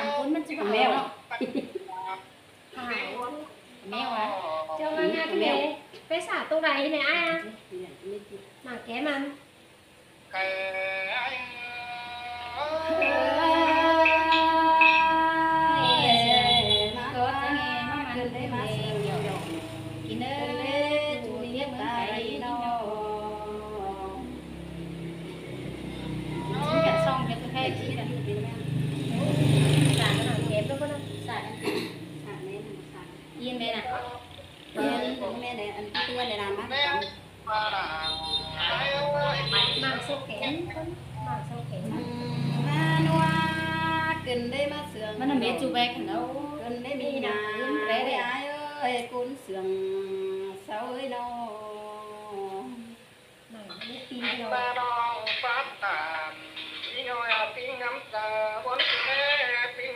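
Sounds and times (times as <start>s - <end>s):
woman singing long note: 10.4s - 25.0s, 25.9s - 28.3s, 41.1s - 53.0s.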